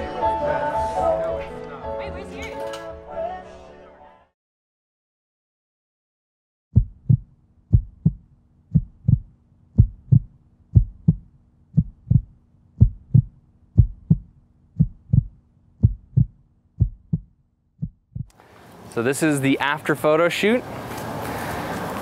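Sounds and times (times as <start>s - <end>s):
heartbeat thumps: 6.8s - 18.4s.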